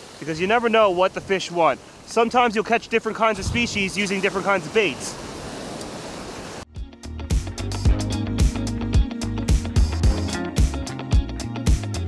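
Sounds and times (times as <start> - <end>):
surf breaking on beach: 0.0 - 6.6
background music: 6.7 - 12.0.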